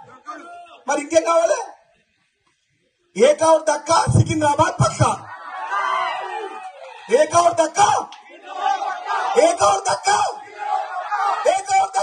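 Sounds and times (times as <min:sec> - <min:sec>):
man shouting through loudspeaker: 0:00.0 - 0:01.8, 0:03.2 - 0:05.3, 0:07.0 - 0:12.0
crowd shouting: 0:05.2 - 0:12.0.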